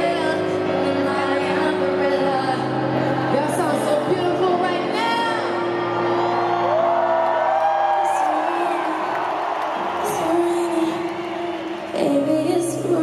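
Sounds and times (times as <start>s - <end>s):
crowd whooping and cheering: 5.4s - 12.6s.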